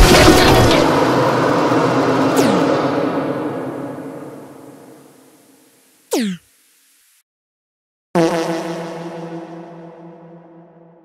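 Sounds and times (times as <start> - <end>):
crash sound effect: 0.0 - 5.2.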